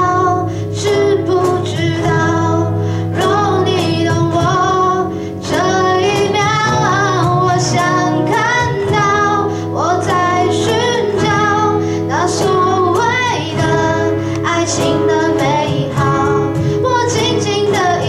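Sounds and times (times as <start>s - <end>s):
electric bass: 0.0s - 18.0s
strummed acoustic guitars: 0.0s - 18.0s
woman singing into a microphone: 0.0s - 18.0s
cajon drum: 3.2s - 9.3s.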